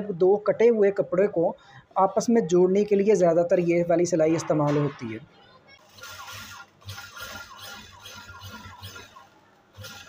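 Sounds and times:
sewing machine running: 5.8s - 10.0s.

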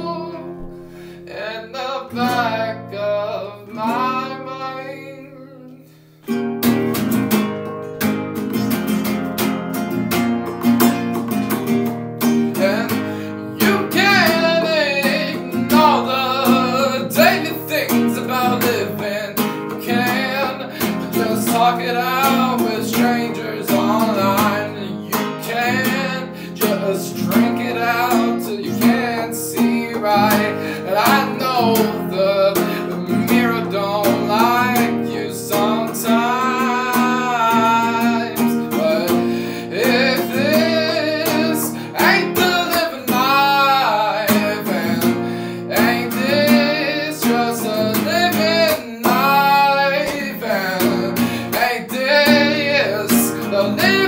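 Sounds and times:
person singing: 0.0s - 6.1s, 12.3s - 54.0s
acoustic guitar strumming: 0.0s - 54.0s.

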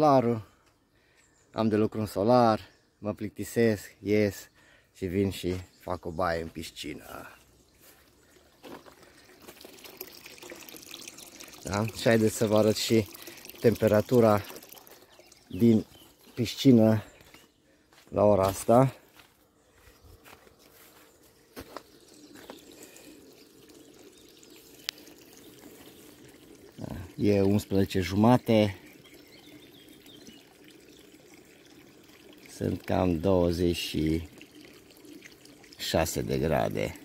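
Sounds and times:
water trickling into pool: 0.0s - 37.0s.

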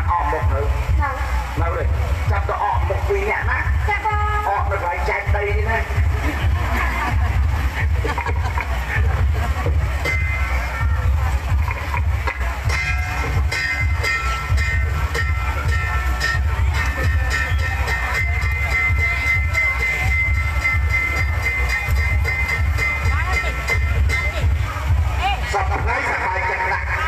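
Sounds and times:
heavy low rumble: 0.0s - 26.0s.

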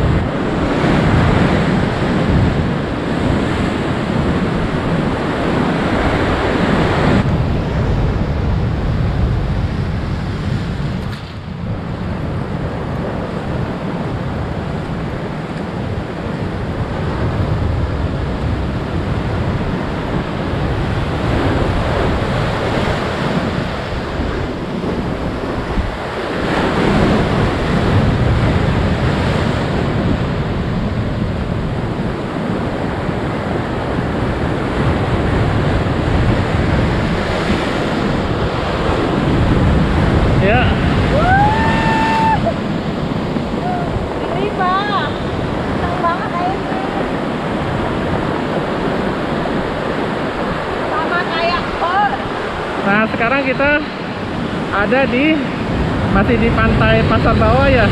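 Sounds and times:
ocean surf breaking: 0.0s - 57.9s.

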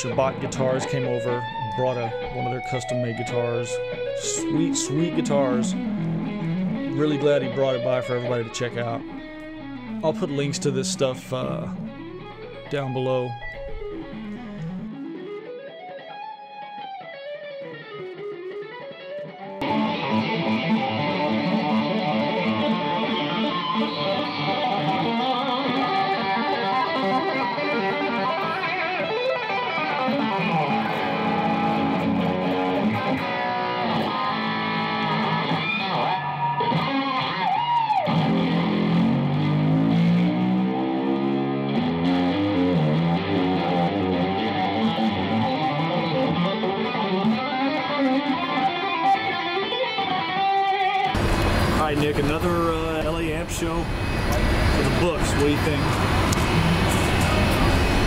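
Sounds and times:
electric guitar lead lines: 0.0s - 58.0s.

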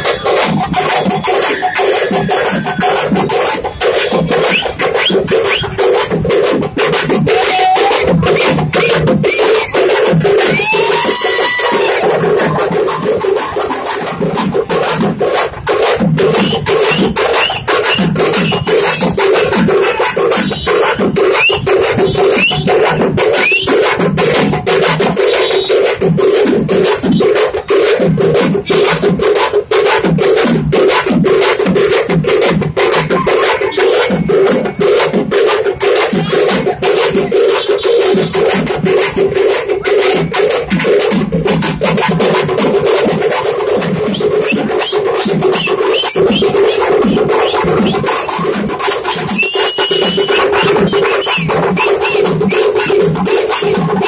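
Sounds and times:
drums playing fast rhythm: 0.0s - 54.0s.

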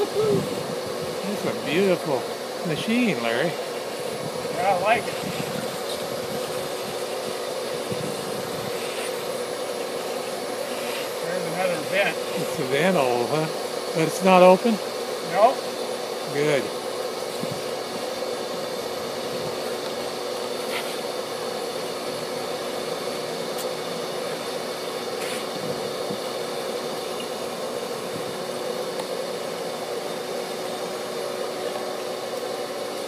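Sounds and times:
vacuum hum and rushing air: 0.0s - 33.0s.

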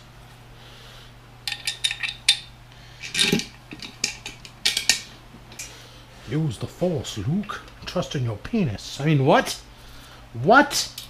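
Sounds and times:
metal parts clinking together: 1.4s - 5.7s.

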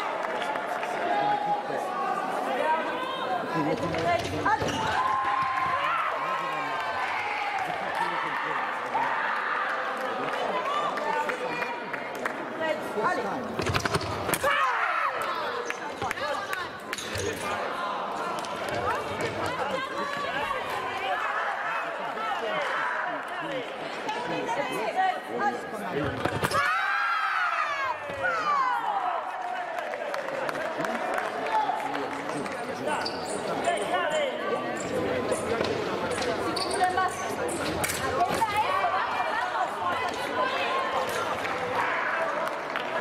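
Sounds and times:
chatter of many voices: 0.0s - 43.0s
murmur in a hall: 0.0s - 43.0s.

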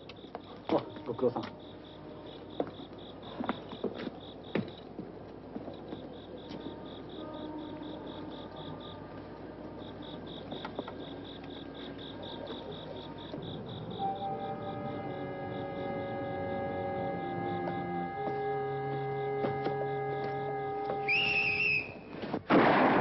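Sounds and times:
crickets chirping: 0.0s - 22.5s.

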